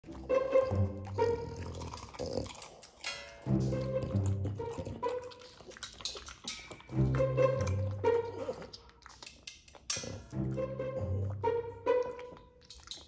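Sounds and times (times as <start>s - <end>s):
light instrumental tune: 0.0s - 1.8s, 3.4s - 5.4s, 6.9s - 8.7s, 10.3s - 12.6s.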